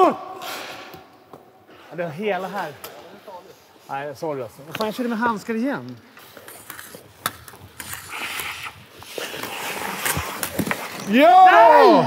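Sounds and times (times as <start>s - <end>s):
hockey sticks clicking: 4.6s - 5.0s, 5.8s - 11.8s
ice skates scraping on ice: 6.1s - 12.0s.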